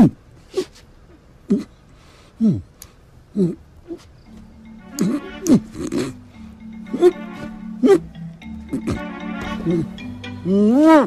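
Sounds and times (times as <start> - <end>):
background music with low note: 4.2 - 11.0
man groaning: 6.9 - 8.1.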